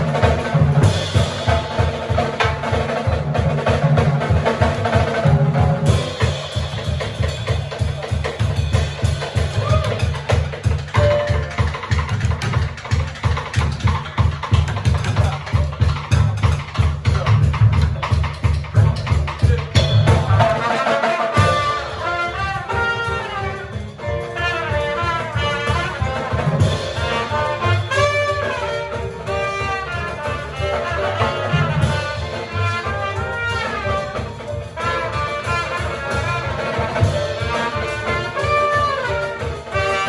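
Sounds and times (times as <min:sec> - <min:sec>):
drums: 0:00.0 - 0:40.0
piano: 0:00.0 - 0:40.0
drum kit cymbal strokes: 0:05.8 - 0:11.2
trumpet solo: 0:20.2 - 0:40.0.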